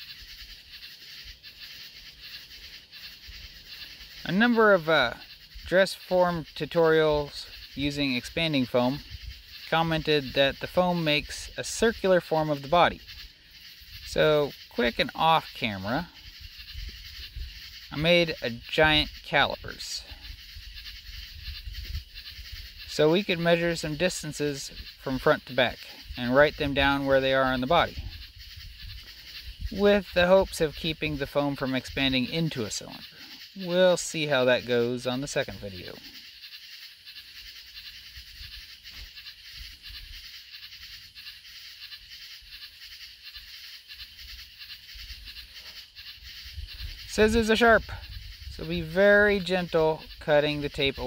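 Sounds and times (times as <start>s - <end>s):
high rapid pulsing chorus: 0.0s - 51.0s.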